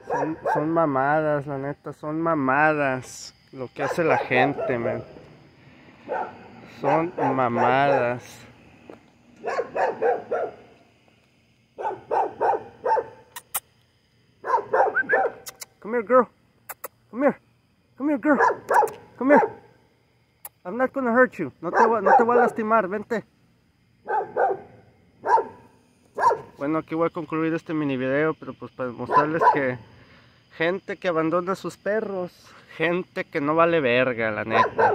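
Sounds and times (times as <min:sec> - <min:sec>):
dog barking: 0:00.0 - 0:00.8, 0:03.8 - 0:04.9, 0:06.0 - 0:08.2, 0:09.4 - 0:10.7, 0:11.8 - 0:13.4, 0:14.4 - 0:15.5, 0:18.4 - 0:19.7, 0:21.6 - 0:22.6, 0:24.0 - 0:26.6, 0:29.1 - 0:29.7, 0:34.5 - 0:34.9.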